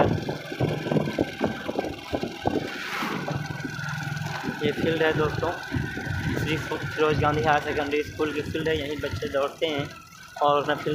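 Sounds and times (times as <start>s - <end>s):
wind buffeting microphone: 0.0s - 9.9s
motorcycle engine running: 0.0s - 10.9s.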